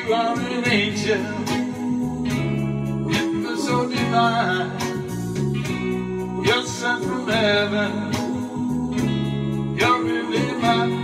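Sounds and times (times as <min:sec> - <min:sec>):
man singing: 0:00.0 - 0:02.4, 0:03.1 - 0:05.2, 0:06.4 - 0:09.1, 0:09.7 - 0:11.0.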